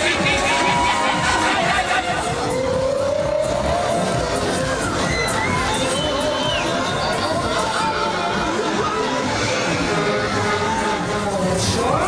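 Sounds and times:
fairground ride music: 0:00.0 - 0:12.0
riders shouting and cheering: 0:00.0 - 0:12.0.

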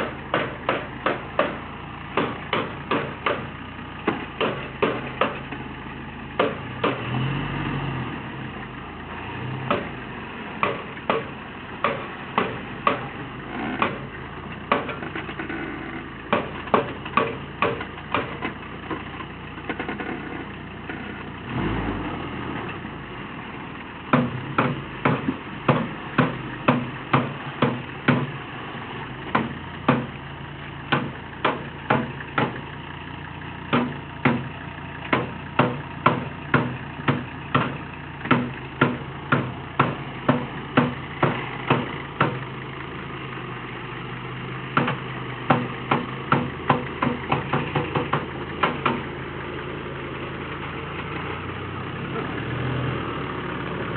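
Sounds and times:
diesel engine idling: 0:00.0 - 0:53.9.

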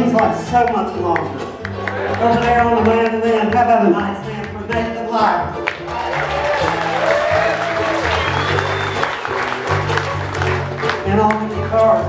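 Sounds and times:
guitar: 0:00.0 - 0:12.0
mandolin: 0:00.0 - 0:12.0
upright bass: 0:00.0 - 0:12.0
audience applauding: 0:01.2 - 0:03.6, 0:05.6 - 0:11.6
fiddle sliding between pitches: 0:05.4 - 0:11.8.

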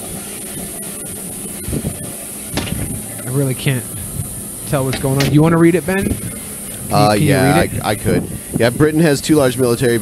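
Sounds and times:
constant hiss: 0:00.0 - 0:10.0.

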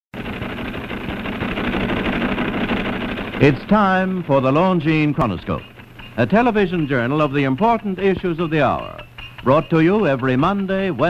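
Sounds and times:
train clattering fast: 0:00.2 - 0:11.0.

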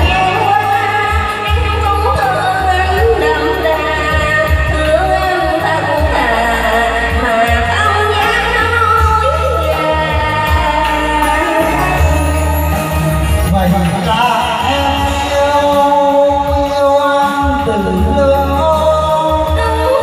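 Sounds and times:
woman singing into a microphone: 0:00.0 - 0:13.4, 0:14.3 - 0:20.0
amplified backing music: 0:00.0 - 0:20.0.

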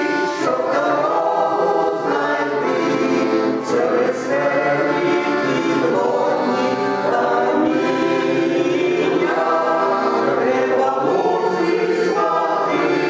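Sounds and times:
accordion: 0:00.0 - 0:13.0
mixed choir singing: 0:00.0 - 0:13.0.

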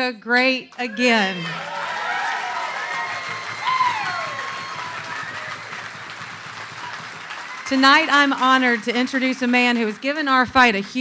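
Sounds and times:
audience applauding and cheering: 0:00.7 - 0:11.0
person whooping: 0:00.8 - 0:05.8.

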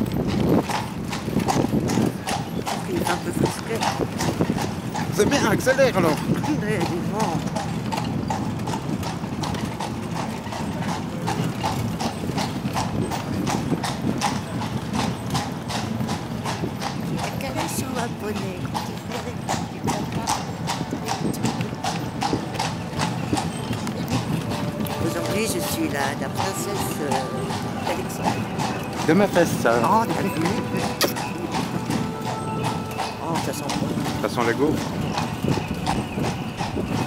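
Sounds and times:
carriage rumbling on cobbles: 0:00.0 - 0:37.0
hooves clip-clopping on cobblestones: 0:00.0 - 0:37.0.

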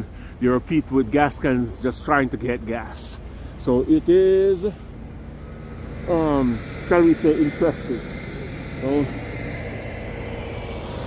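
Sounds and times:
faint steady hum: 0:00.0 - 0:11.0
idling vehicle engines rumble: 0:00.0 - 0:11.0.

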